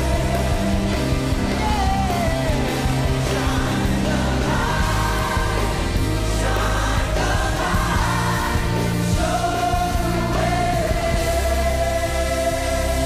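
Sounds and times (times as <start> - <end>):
choir singing gospel music: 0.0 - 13.0.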